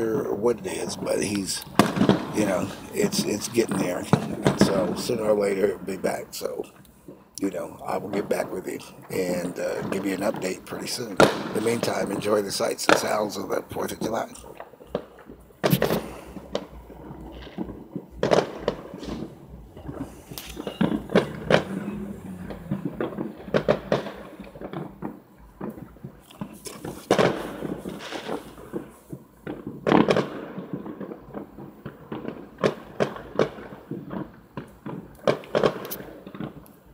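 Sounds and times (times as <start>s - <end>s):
firecrackers popping and banging: 0.0s - 36.9s.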